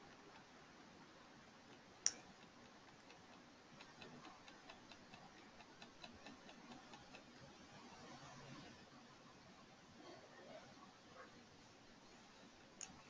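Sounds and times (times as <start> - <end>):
faint even ticks: 1.7 - 8.7.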